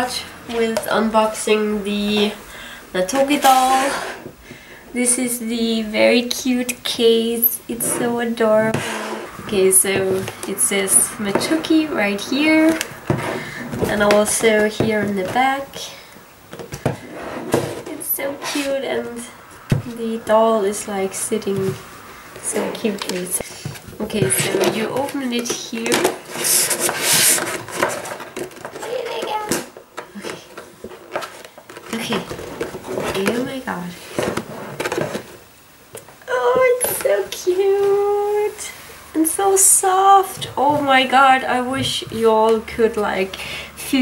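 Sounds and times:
plastic rubbing: 3.0s - 4.4s, 6.6s - 15.9s, 16.5s - 43.3s.

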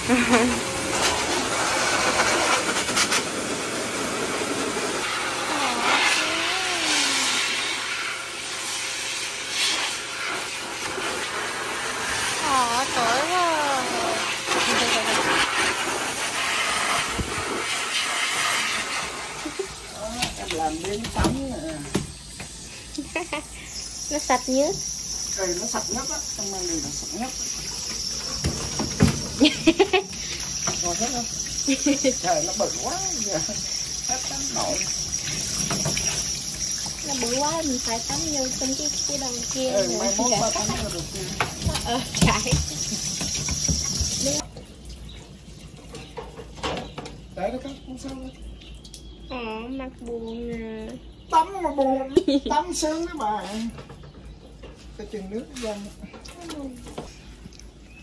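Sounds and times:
person laughing: 0.0s - 0.7s, 23.0s - 23.7s, 29.4s - 30.4s
blower dryer rushing air: 0.0s - 44.4s
high insect chirring: 22.1s - 44.4s.

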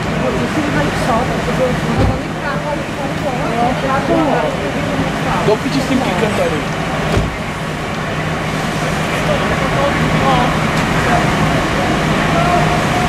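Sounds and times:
engines and road traffic hum: 0.0s - 13.0s
people talking: 0.0s - 13.0s.

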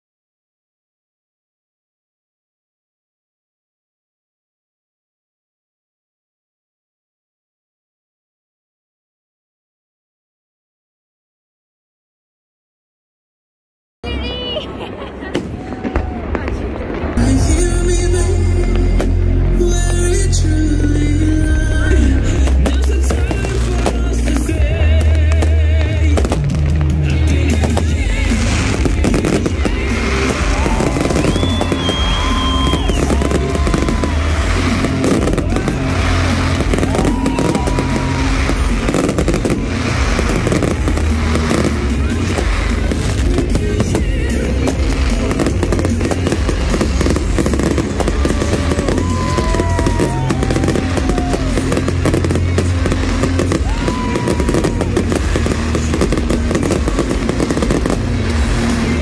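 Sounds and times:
fireworks bangs and crackles: 14.1s - 59.0s
loud music with heavy bass: 17.2s - 59.0s.

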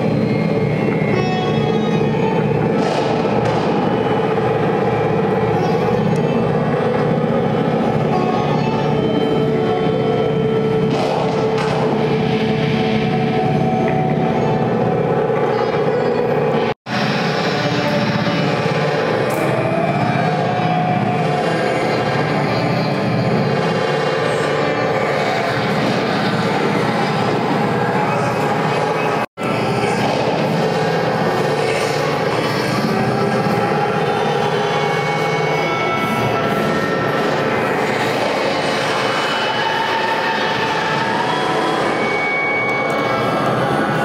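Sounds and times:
grainy violin drone: 0.0s - 44.0s.

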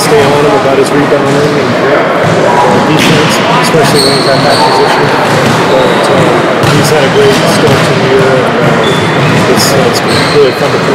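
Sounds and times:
loud room noise: 0.0s - 10.9s
voices talking: 0.0s - 10.9s.

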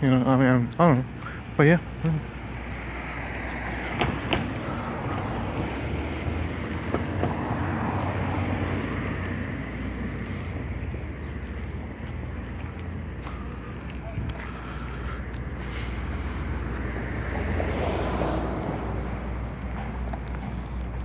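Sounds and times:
distant road traffic: 0.0s - 21.0s
faint clicks: 19.6s - 21.0s.

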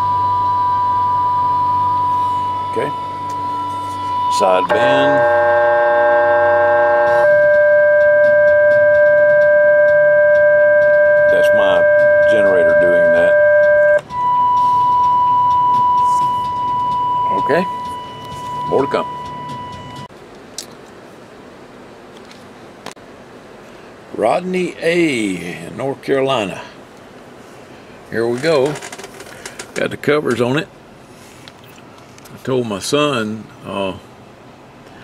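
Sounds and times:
radio whistling tones: 0.0s - 20.1s.

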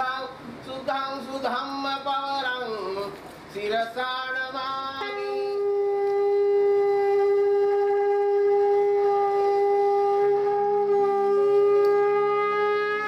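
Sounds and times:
conch shell blown: 4.9s - 13.0s.

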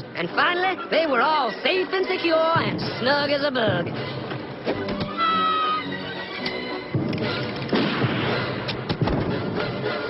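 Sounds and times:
cartoon soundtrack music: 4.8s - 10.0s.

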